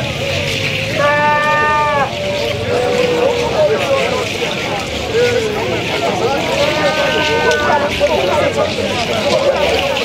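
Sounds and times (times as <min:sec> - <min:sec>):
continuous rattling hiss: 0:00.0 - 0:10.0
wavering chanted voices: 0:00.0 - 0:10.0.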